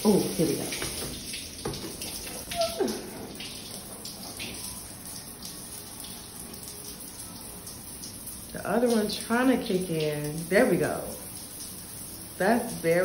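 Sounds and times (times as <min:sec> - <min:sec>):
shower water spraying: 0:00.0 - 0:13.0.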